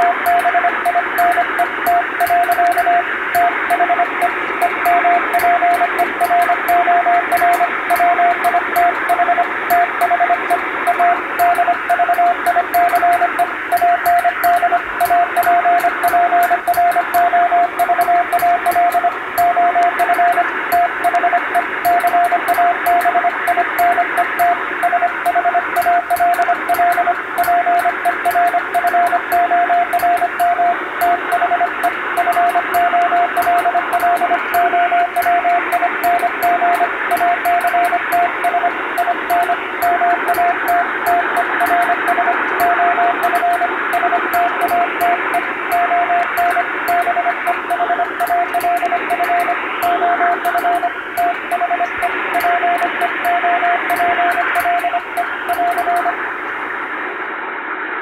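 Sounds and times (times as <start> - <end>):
morse code tone: 0.0 - 56.4
radio band noise hiss: 0.0 - 58.0.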